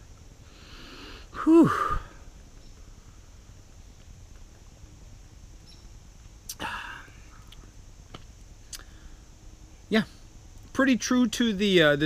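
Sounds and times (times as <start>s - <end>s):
low steady background: 0.0s - 12.0s
breathy exhale: 0.4s - 2.2s.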